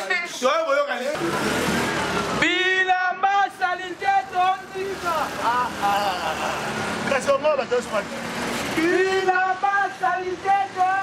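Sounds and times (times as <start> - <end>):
street traffic: 0.0 - 11.0
man calling out loudly: 8.8 - 11.0.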